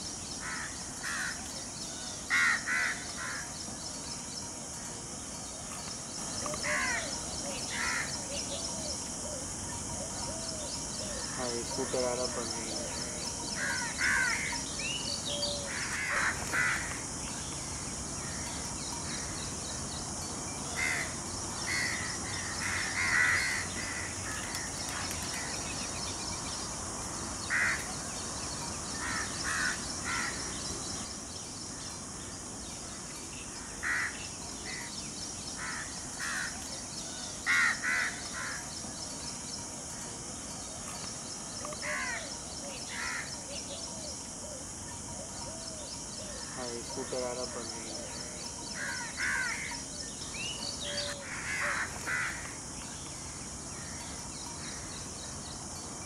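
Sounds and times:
outdoor ambient hiss: 0.0 - 56.0
birds calling: 5.3 - 39.7, 40.3 - 56.0.

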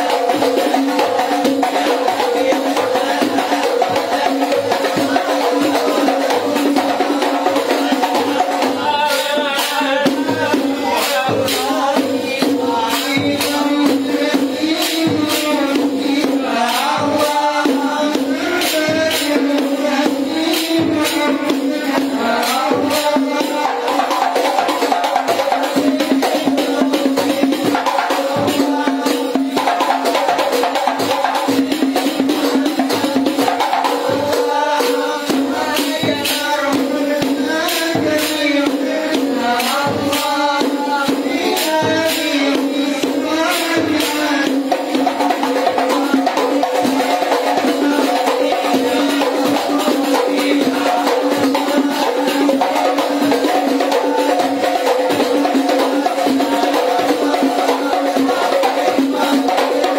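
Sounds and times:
frame drums with jingles: 0.0 - 59.9
man singing into a microphone: 0.0 - 59.9.

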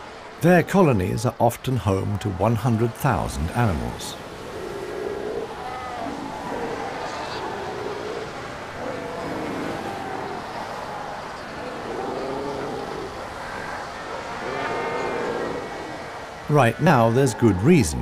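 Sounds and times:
seal colony calling: 0.4 - 18.0.

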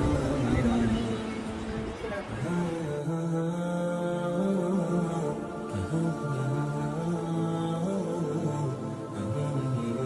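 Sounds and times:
person chanting unaccompanied: 0.0 - 10.0.

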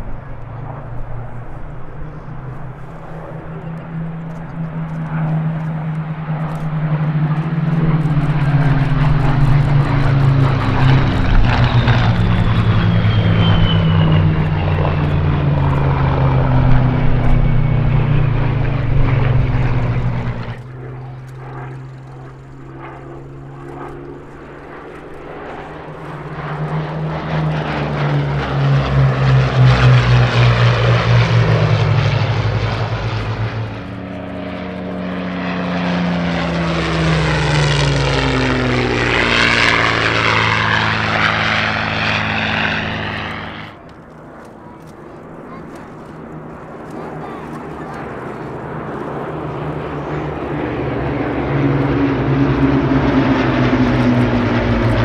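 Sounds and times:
propeller aircraft flyby: 0.0 - 55.0.

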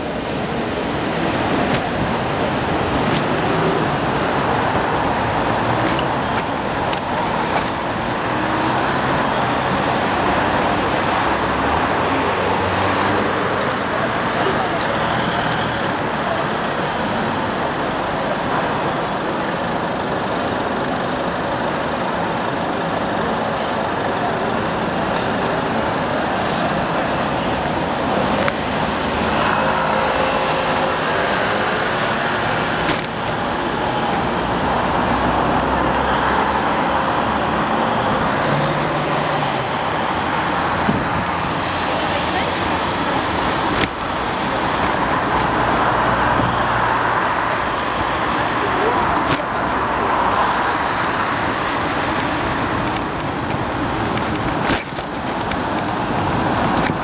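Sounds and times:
indistinct voices: 0.0 - 57.0
passing cars: 0.0 - 57.0.

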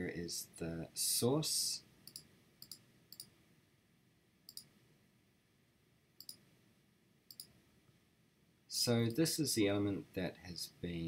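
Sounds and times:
faint computer mouse clicks: 2.1 - 3.3, 4.5 - 4.7, 6.2 - 6.4, 7.3 - 7.6.

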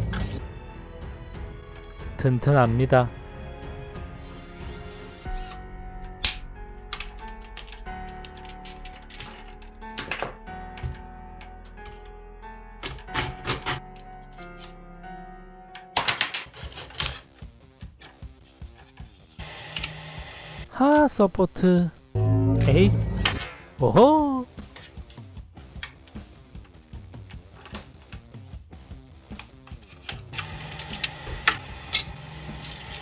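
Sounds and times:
background music: 0.0 - 33.0.

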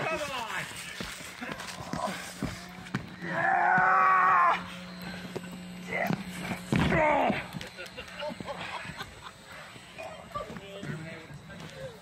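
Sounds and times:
shouts and grunts: 3.2 - 4.7.

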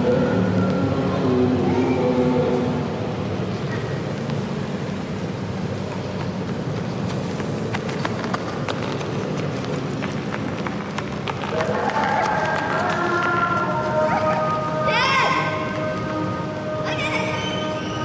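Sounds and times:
murmur of crowd voices: 0.0 - 4.2.

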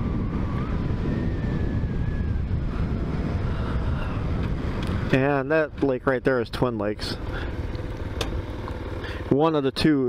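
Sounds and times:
wind noise on microphone: 0.0 - 7.4
motorcycle engine rumble: 0.0 - 10.0.

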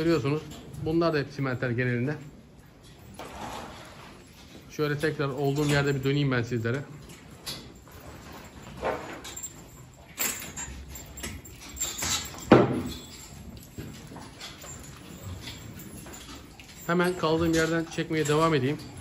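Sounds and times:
cattle and stall sounds: 0.0 - 19.0.

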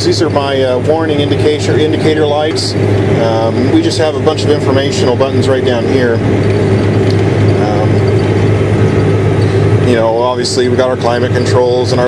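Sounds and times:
tractor diesel engine droning: 0.0 - 12.0.

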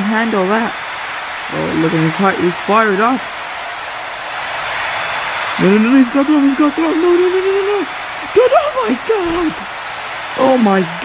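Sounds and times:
steady rushing noise: 0.0 - 11.0
man's voice: 5.6 - 9.6.

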